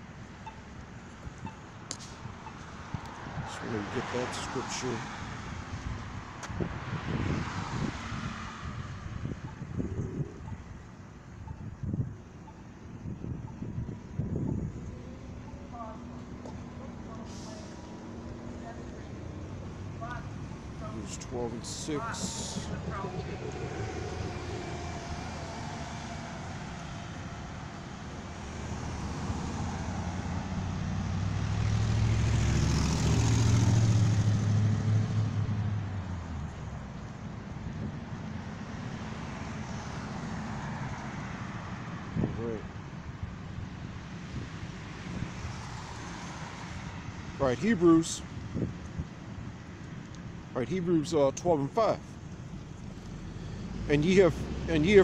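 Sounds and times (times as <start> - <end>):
vehicle driving past: 3.3 - 10.5, 14.3 - 36.8, 52.6 - 55.0
wind buffeting microphone: 5.2 - 31.3, 42.0 - 45.6, 48.2 - 49.6.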